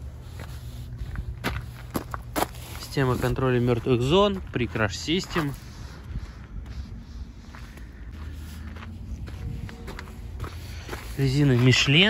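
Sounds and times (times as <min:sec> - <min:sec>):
footsteps on gravel: 0:00.0 - 0:12.0
low background rumble: 0:00.0 - 0:12.0.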